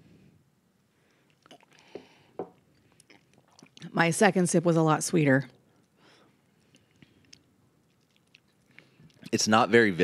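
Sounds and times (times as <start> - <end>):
soft sip: 1.2 - 3.9
mouth clicks and lip smacks: 1.3 - 3.9, 6.6 - 9.4.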